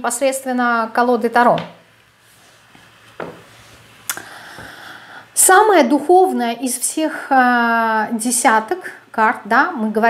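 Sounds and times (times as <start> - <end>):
book knocking: 3.2 - 3.5.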